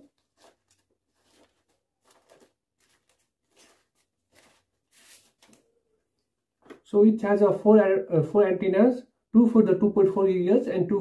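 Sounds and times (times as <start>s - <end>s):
plastic bag rustling: 0.0s - 5.6s.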